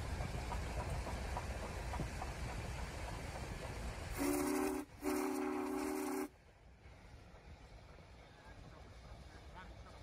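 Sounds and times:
low rumble of passing train: 0.0s - 10.0s
steam locomotive whistle: 4.2s - 6.4s.

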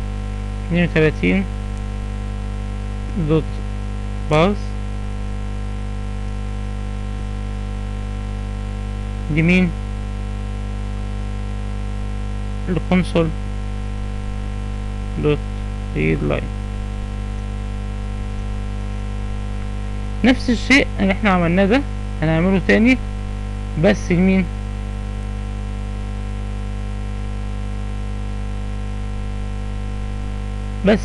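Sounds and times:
electrical mains hum: 0.0s - 31.0s
person speaking: 0.6s - 1.5s, 3.0s - 3.7s, 4.3s - 4.8s, 9.3s - 9.8s, 12.6s - 13.4s, 14.6s - 16.6s, 19.8s - 23.1s, 23.7s - 24.6s, 30.8s - 31.0s.

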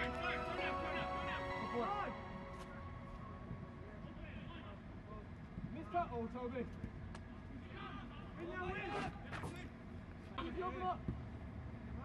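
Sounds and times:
players shouting: 0.0s - 3.5s.

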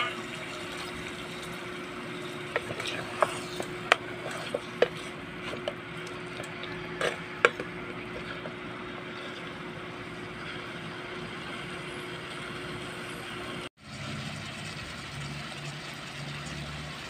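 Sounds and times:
faint hum: 0.0s - 13.7s.

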